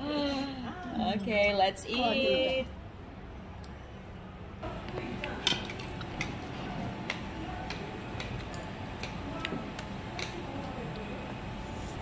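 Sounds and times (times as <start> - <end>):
steady low background noise: 0.0 - 12.0
light irregular clicks from hot pot: 7.1 - 11.1.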